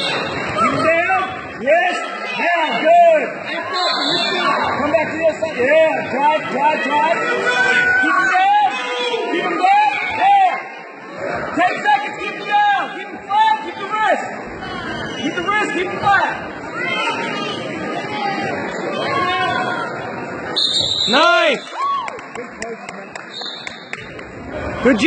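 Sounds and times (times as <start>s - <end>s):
spectators talking and calling out: 0.0s - 25.0s.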